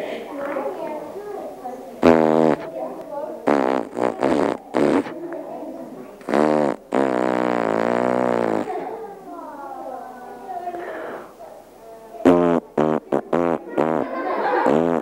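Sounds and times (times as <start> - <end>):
man blowing raspberries: 2.0 - 2.7, 3.5 - 5.2, 6.2 - 8.8, 12.3 - 14.0, 14.6 - 15.0.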